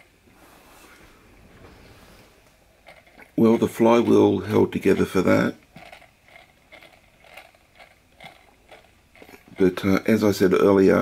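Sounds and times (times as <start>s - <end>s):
toy steam engine linkage clicking: 2.9s - 10.2s.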